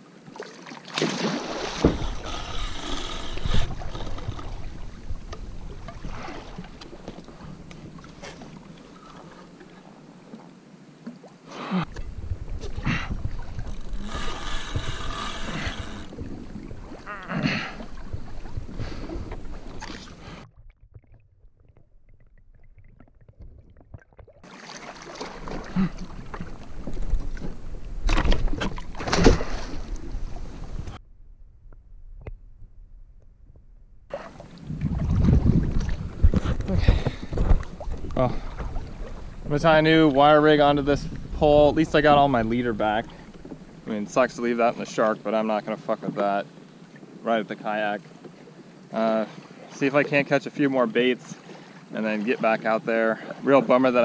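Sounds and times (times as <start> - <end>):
water splashing around a kayak: 0.0 - 31.0, 34.1 - 54.0
wind on the microphone: 11.9 - 19.9, 34.4 - 43.8.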